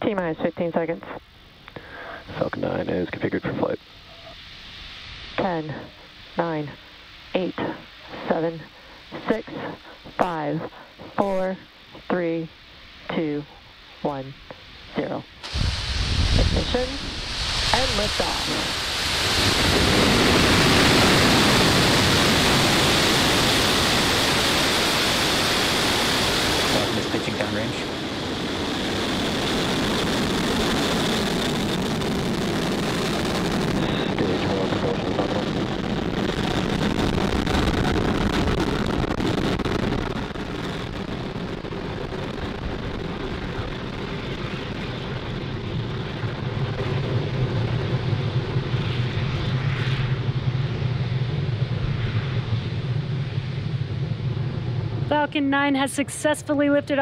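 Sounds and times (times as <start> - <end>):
rocket engines roaring: 0.0 - 57.0.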